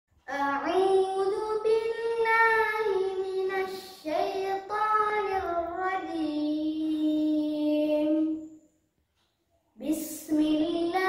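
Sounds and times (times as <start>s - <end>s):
boy reciting melodically: 0.2s - 8.6s, 9.8s - 11.0s.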